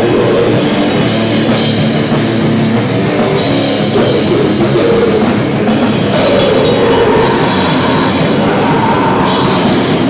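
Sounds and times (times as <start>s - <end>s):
vocalist screaming: 0.0s - 0.9s, 4.0s - 10.0s
distorted guitar and bass: 0.0s - 10.0s.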